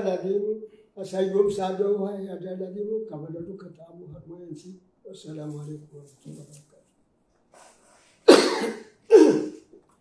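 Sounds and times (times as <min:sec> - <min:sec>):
man coughing: 0:08.3 - 0:09.7.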